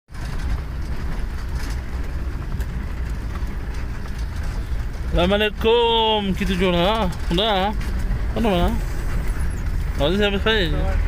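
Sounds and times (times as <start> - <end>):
faint rattles: 0.1 - 11.0
vehicle engine and road noise: 0.1 - 11.0.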